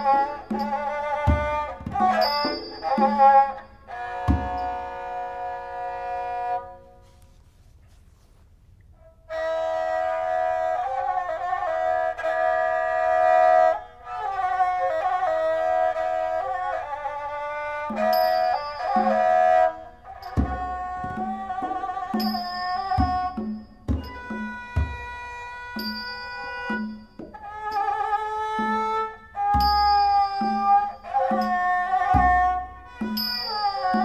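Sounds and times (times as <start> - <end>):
bowed fiddle playing: 0.0 - 7.1, 9.3 - 34.0.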